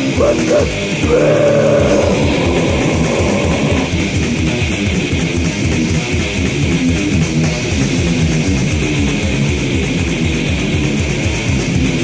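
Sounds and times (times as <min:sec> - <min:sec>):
fast drumming: 0:00.0 - 0:06.8
bass guitar: 0:00.0 - 0:12.0
distorted electric guitars: 0:00.0 - 0:12.0.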